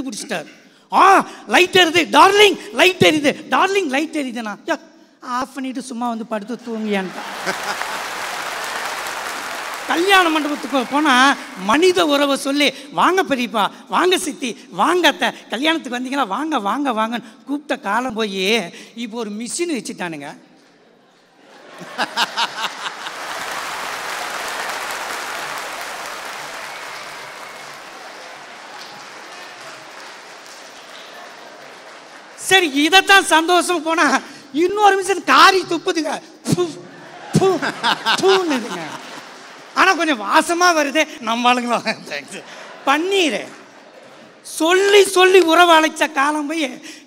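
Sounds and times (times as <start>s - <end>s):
large audience applauding: 7.0s - 12.3s, 21.7s - 32.9s, 37.3s - 41.0s.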